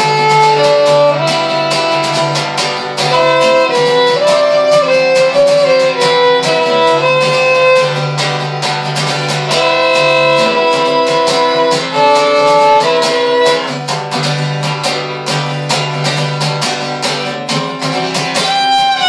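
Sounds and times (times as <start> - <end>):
fiddle bowed notes: 0.0 - 14.2, 18.4 - 19.0
acoustic guitar strumming: 0.0 - 19.0.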